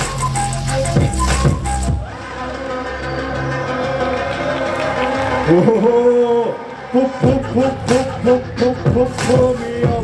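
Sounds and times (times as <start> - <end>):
drum beat with bass: 0.0 - 2.1, 7.2 - 10.0.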